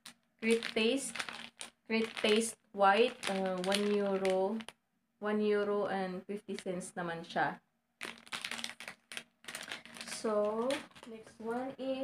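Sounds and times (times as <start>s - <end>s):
plastic packaging crinkling: 0.0s - 4.8s, 8.0s - 11.3s.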